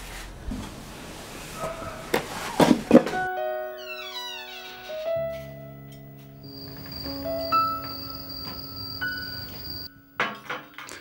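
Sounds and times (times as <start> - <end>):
steady high tone: 3.4 - 10.2.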